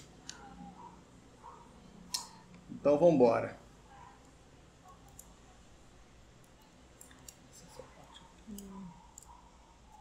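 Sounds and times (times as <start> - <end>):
computer mouse clicks: 4.9 - 5.3.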